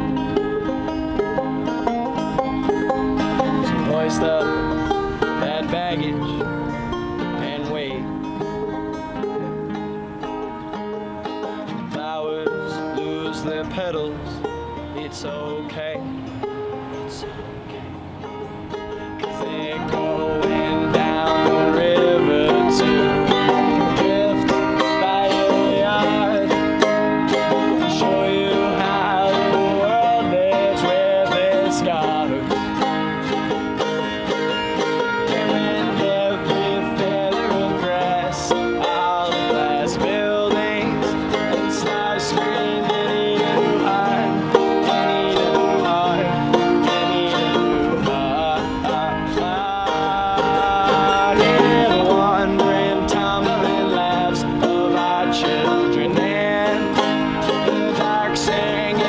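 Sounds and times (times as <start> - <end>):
acoustic guitar strumming: 0.0 - 59.0
banjo picking: 0.0 - 59.0
man singing: 2.8 - 8.2, 11.4 - 16.2, 16.9 - 17.7, 19.1 - 59.0.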